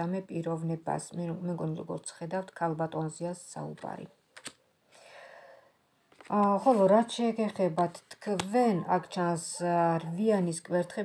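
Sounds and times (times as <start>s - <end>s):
card clicks: 4.4s - 4.6s.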